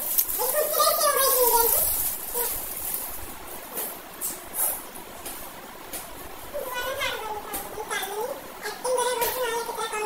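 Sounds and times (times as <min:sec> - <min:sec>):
child talking in a sing-song way: 0:00.4 - 0:02.6, 0:06.6 - 0:10.0.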